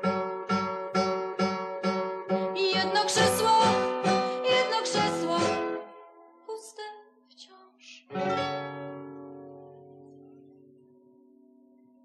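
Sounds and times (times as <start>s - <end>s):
acoustic guitar chord ringing: 0.0s - 6.4s, 8.1s - 12.0s.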